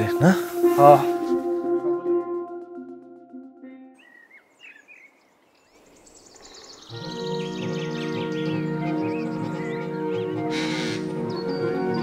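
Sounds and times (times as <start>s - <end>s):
held music chord: 0.0s - 4.2s, 6.9s - 12.0s
bird chirps and trills: 4.0s - 12.0s.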